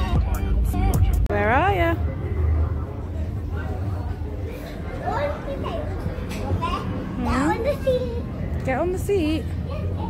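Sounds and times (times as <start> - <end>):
young children calling and chattering: 0.0 - 10.0.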